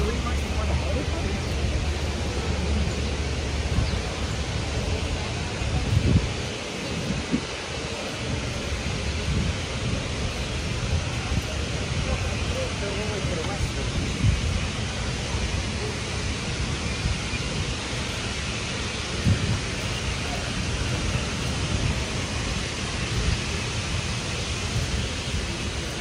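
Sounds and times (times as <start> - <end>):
passers-by talking: 0.0 - 17.2
street noise: 0.0 - 26.0
vehicle engine rumble: 0.0 - 26.0.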